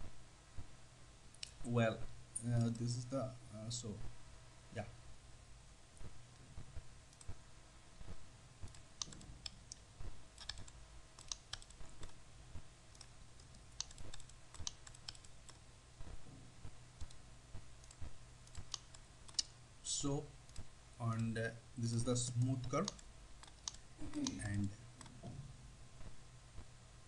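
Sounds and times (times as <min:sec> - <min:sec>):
low steady hum: 0:00.0 - 0:27.0
computer mouse clicks: 0:07.1 - 0:07.4, 0:08.6 - 0:12.2, 0:12.9 - 0:16.2, 0:17.0 - 0:17.2, 0:17.8 - 0:19.6, 0:22.3 - 0:25.3.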